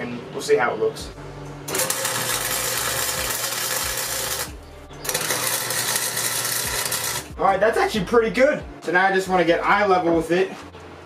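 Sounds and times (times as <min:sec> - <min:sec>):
arc welder buzzing: 0:01.7 - 0:07.5.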